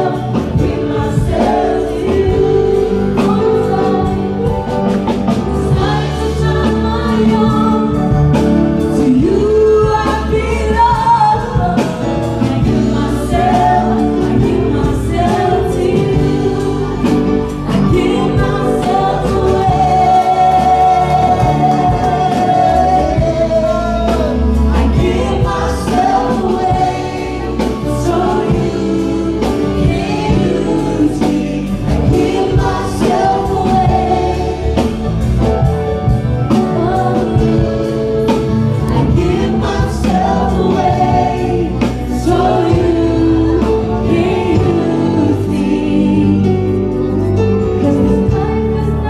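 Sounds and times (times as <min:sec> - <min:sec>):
drum kit: 0:00.0 - 0:49.0
electric bass: 0:00.0 - 0:49.0
woman singing into a microphone: 0:05.7 - 0:34.6.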